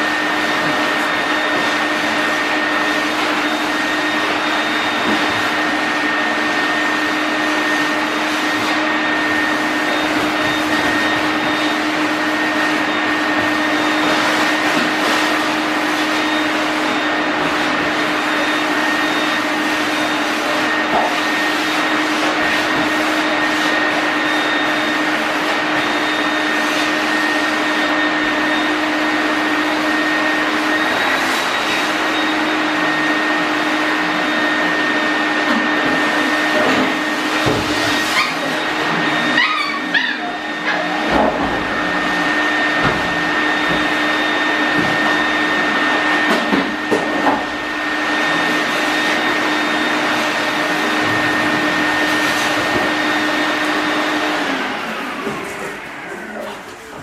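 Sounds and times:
puppies whimpering and yipping: 39.3 - 40.9.

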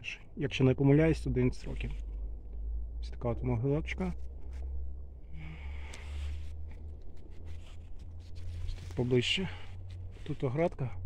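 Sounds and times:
low background rumble: 0.0 - 11.0
faint rustle: 1.4 - 2.7, 4.0 - 11.0.

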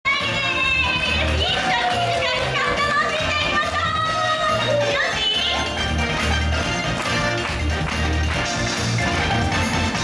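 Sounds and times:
pop song over loudspeakers: 0.1 - 10.0.

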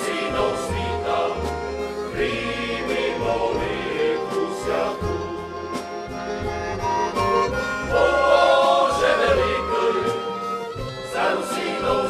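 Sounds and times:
male choir singing in harmony: 0.0 - 6.3, 7.1 - 12.0
folk ensemble playing: 0.0 - 12.0
low bass line: 1.0 - 8.2.

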